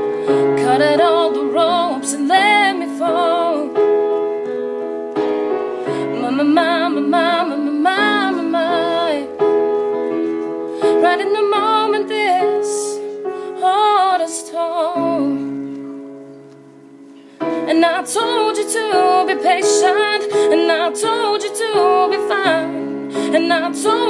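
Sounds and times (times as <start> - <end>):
piano chords: 0.0 - 24.0
woman singing: 0.3 - 3.8, 5.9 - 9.4, 10.8 - 15.5, 17.5 - 24.0.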